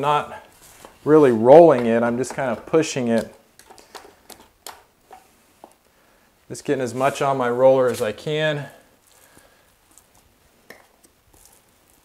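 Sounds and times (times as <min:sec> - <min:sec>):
paint roller tapping in bucket: 0:01.6 - 0:05.8.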